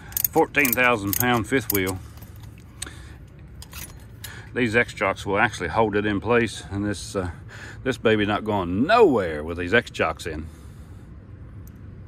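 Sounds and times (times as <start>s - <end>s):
metallic clicks and rattles: 0.0s - 4.4s.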